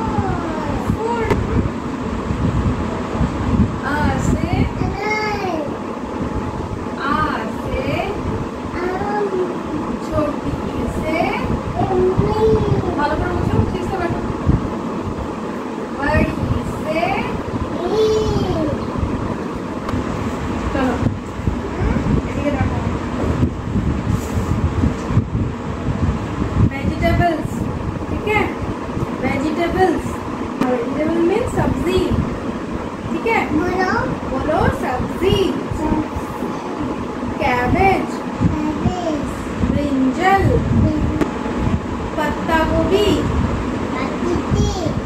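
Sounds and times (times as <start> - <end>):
low background rumble: 0.0 - 45.0
toddler's high-pitched voice: 4.8 - 5.8, 8.8 - 9.6, 11.8 - 13.0, 17.8 - 18.8, 21.7 - 22.2, 38.4 - 39.3, 43.9 - 45.0.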